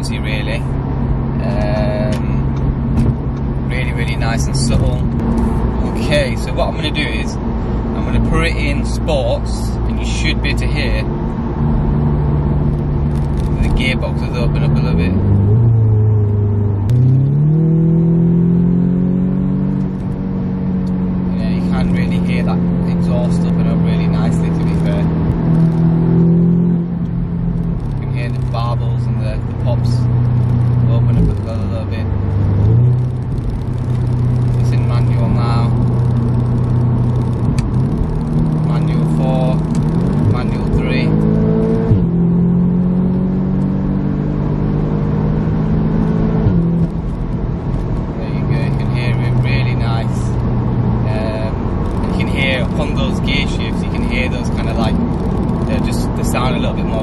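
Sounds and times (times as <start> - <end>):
car engine revving in cabin: 0.0 - 57.0.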